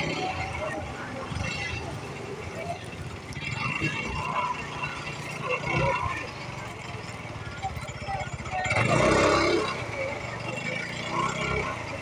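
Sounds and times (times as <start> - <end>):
motor scooter engine running: 0.0 - 12.0
people's voices: 0.0 - 12.0.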